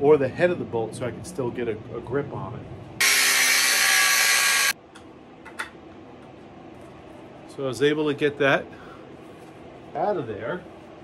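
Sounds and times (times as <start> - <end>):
angle grinder cutting metal: 3.0 - 4.8.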